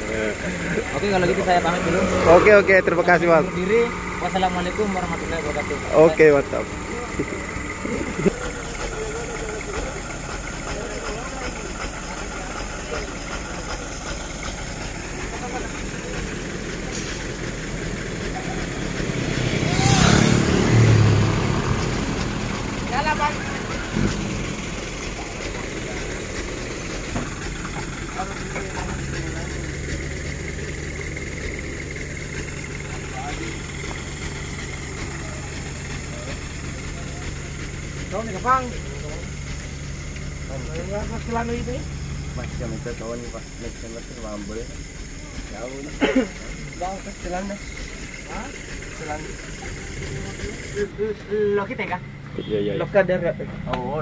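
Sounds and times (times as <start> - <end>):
faint voices: 0.0 - 20.2, 22.7 - 54.0
truck engines idling: 0.0 - 54.0.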